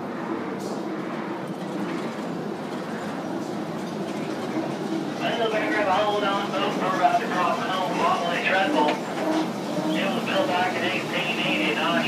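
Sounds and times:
ride train wheels rumbling on rail: 0:00.0 - 0:12.0
faint voices: 0:05.1 - 0:12.0.

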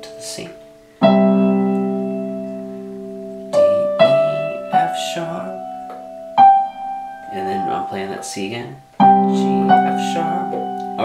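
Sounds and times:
electronic keyboard piano notes: 0:00.0 - 0:11.0.

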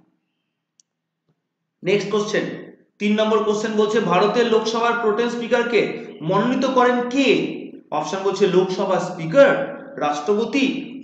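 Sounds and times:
man's voice: 0:01.8 - 0:10.9.

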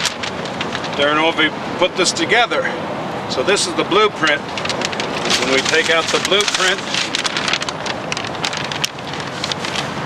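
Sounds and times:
paper sheet rustling and crinkling: 0:00.0 - 0:01.5, 0:03.9 - 0:10.0.

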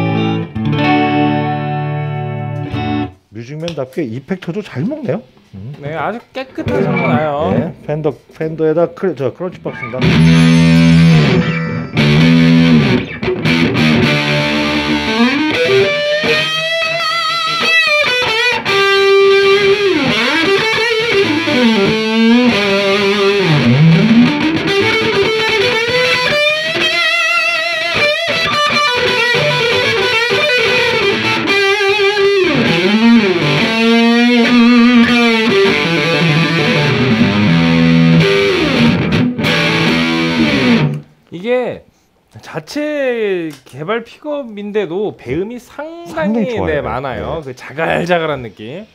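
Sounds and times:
overdriven electric guitar: 0:00.0 - 0:03.2, 0:09.6 - 0:41.2.

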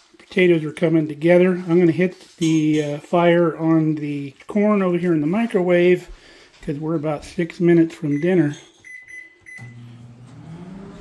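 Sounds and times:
keypad beeps: 0:08.1 - 0:09.8
microwave oven humming: 0:09.4 - 0:11.0.

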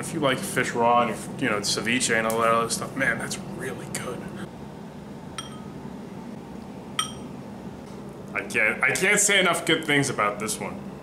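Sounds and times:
faint room hum: 0:00.0 - 0:11.0
metal spoon clinking on dishes: 0:05.4 - 0:05.7, 0:07.0 - 0:07.3.

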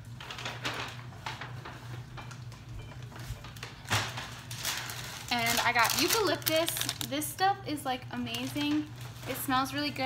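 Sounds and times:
plastic sleeve rustling and crinkling: 0:00.0 - 0:07.5, 0:08.2 - 0:10.0.

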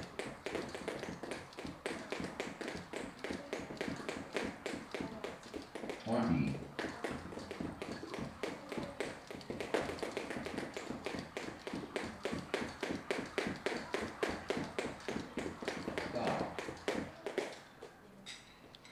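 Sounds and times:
jump ropes slapping floor: 0:00.0 - 0:17.9
quick foot landings: 0:00.0 - 0:18.0.

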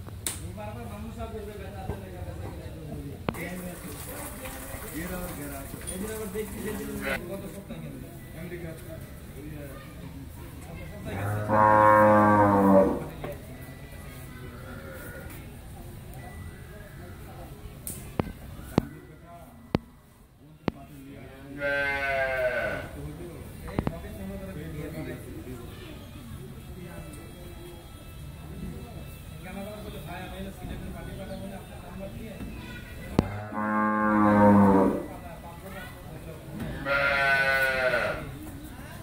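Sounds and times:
cow mooing: 0:11.2 - 0:13.1, 0:33.3 - 0:35.1.

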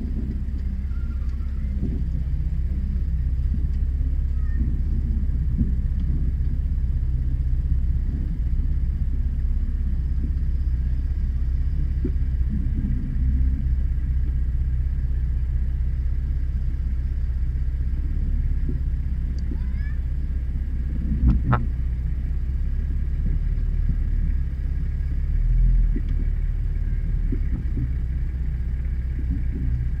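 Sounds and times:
engine rumbling at low revs: 0:00.0 - 0:30.0.

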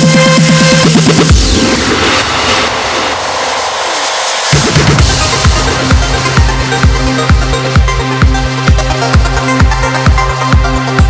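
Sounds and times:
falling synth sweep: 0:01.3 - 0:08.4
whooshing noise wash: 0:01.3 - 0:08.8.

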